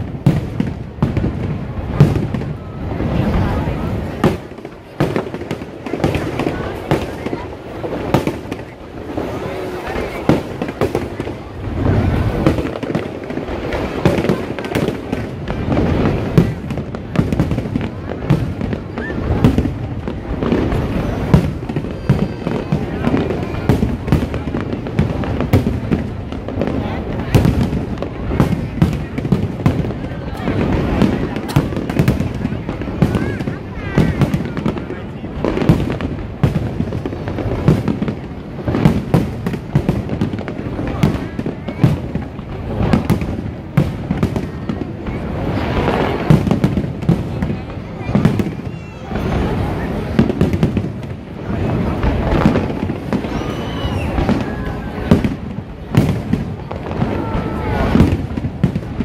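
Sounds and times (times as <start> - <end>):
crowd voices: 0.0 - 59.0
fireworks bursting: 0.0 - 59.0.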